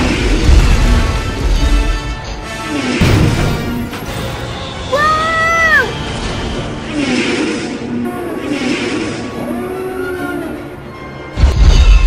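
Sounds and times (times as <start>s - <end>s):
orchestral music: 0.0s - 7.4s
child crying out: 4.9s - 5.9s.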